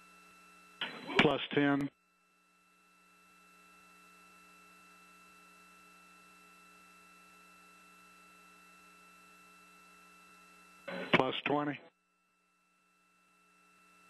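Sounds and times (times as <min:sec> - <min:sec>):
faint electrical hum: 0:00.1 - 0:14.0.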